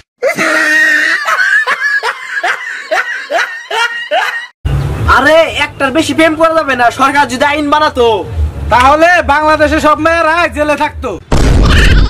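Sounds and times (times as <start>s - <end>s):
person laughing: 0.2s - 4.5s, 11.6s - 12.0s.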